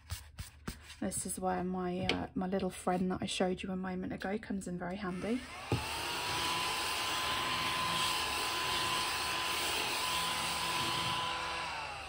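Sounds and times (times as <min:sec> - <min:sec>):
mini vacuum motor whine: 0:05.1 - 0:12.0.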